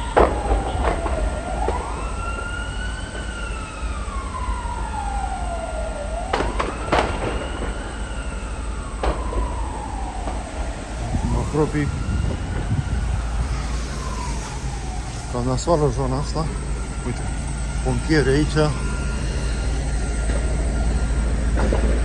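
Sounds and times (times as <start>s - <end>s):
sharp cracks: 0.0s - 4.2s, 6.2s - 22.0s
emergency siren wailing: 0.0s - 22.0s
steady low rumble: 0.0s - 22.0s.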